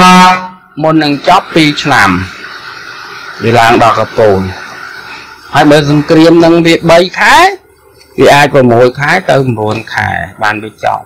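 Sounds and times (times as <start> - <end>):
man speaking: 0.0 - 2.4, 3.4 - 4.7, 5.5 - 11.0.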